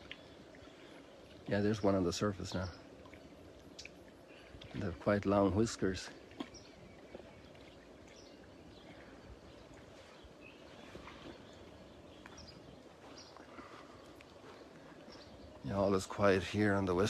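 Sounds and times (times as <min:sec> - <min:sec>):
steady low outdoor background: 0:00.0 - 0:17.0.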